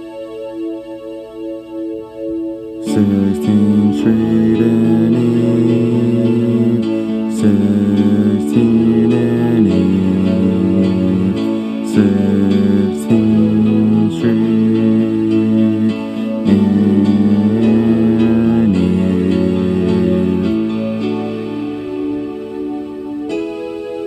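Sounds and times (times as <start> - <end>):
slow piano chords: 0.0 - 24.0.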